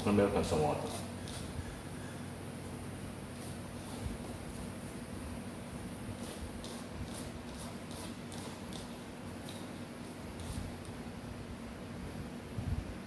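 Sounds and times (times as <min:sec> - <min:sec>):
hand mixing flour in a bowl: 0:00.0 - 0:01.9, 0:06.0 - 0:11.0
steady low hum: 0:00.0 - 0:13.0.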